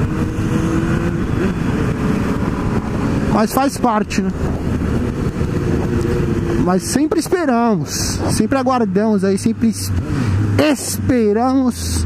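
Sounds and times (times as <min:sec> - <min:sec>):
wind noise on microphone: 0:00.0 - 0:08.7
motorcycle engine running: 0:00.0 - 0:12.0.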